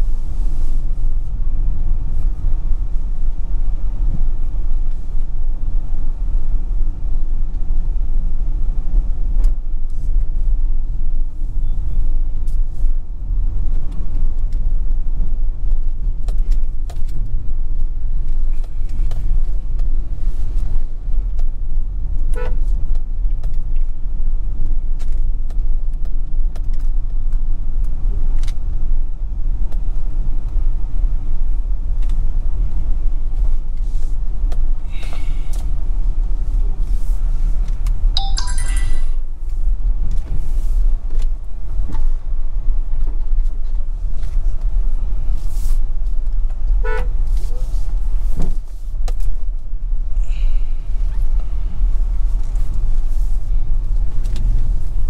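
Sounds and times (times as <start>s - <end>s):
vehicle rumbling on rough road: 0.0s - 38.2s, 39.2s - 55.0s
brief high-pitched tone: 38.2s - 39.2s.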